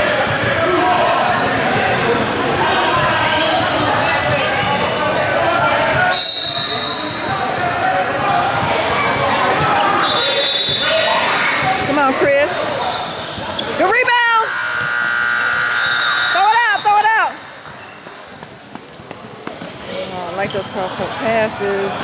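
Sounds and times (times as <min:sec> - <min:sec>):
sneakers squeaking on court: 0:12.8 - 0:22.0.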